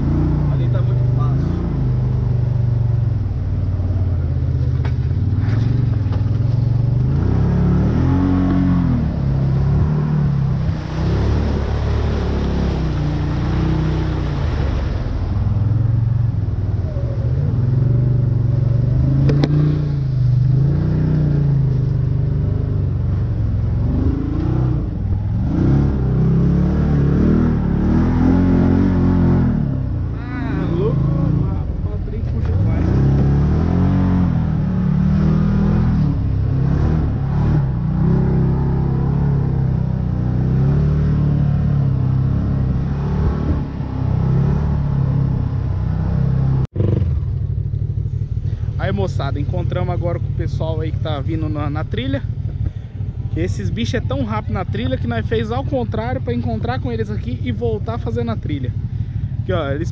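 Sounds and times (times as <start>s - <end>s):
off-road vehicle engine revving: 0.0s - 59.9s.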